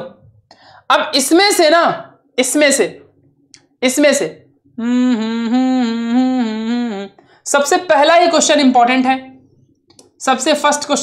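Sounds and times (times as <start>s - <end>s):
man humming a held note: 4.8s - 7.1s.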